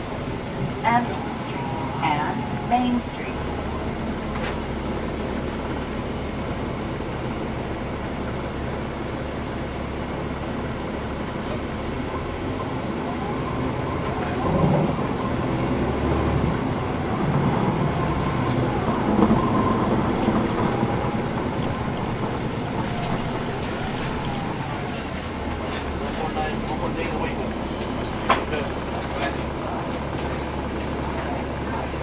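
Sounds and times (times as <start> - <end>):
bus cabin noise: 0.0 - 32.0
bus diesel engine drone: 0.0 - 32.0.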